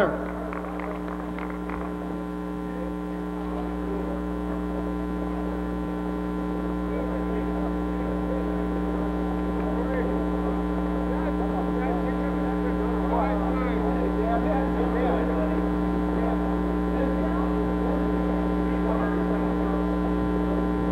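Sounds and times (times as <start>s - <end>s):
electrical mains hum: 0.0s - 20.9s.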